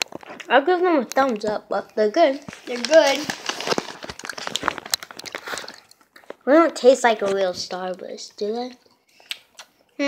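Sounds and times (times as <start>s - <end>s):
handling crinkles and clicks: 0.0s - 0.5s, 2.4s - 6.4s.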